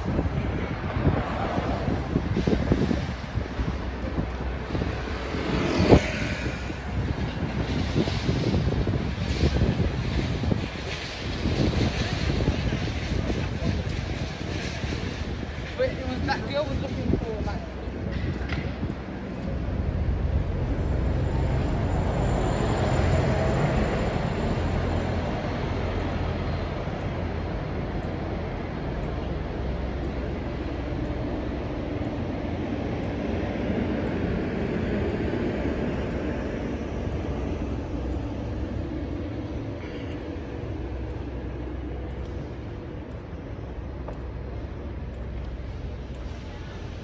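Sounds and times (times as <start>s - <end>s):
traffic hum: 0.0s - 47.0s
vehicle passing: 0.8s - 8.8s.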